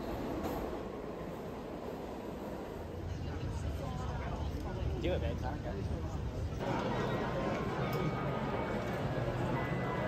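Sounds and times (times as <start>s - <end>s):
subway train rumble and rail noise: 0.0s - 10.0s.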